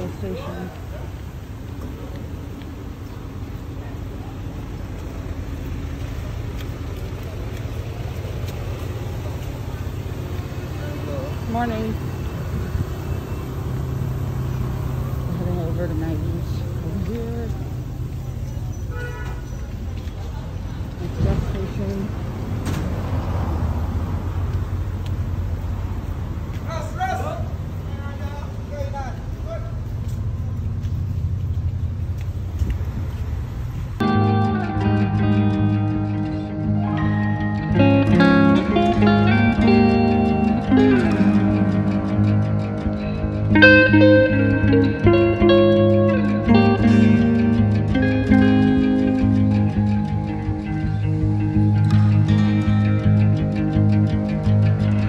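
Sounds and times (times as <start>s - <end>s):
faint voices: 0.0s - 13.1s, 15.1s - 22.3s
street traffic: 0.0s - 55.0s
wind buffeting microphone: 31.6s - 34.1s.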